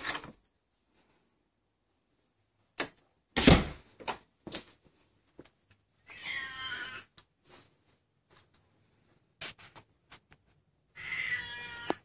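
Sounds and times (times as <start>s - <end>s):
cat meowing: 6.1s - 7.1s, 10.9s - 12.0s.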